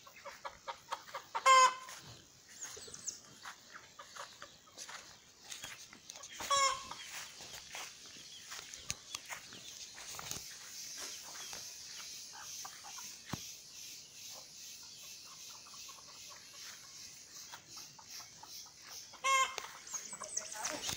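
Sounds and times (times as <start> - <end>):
chickens clucking: 0.0 - 20.9
chicken squawking: 0.9 - 1.9, 6.4 - 7.0.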